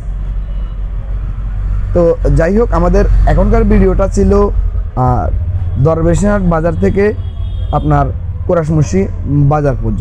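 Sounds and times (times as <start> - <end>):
street traffic engine hum: 0.0 - 10.0.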